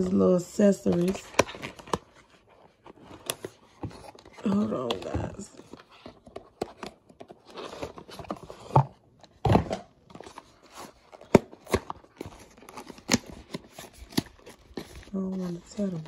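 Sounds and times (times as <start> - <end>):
cardboard box rustling and scraping: 1.0 - 9.0, 11.8 - 16.0.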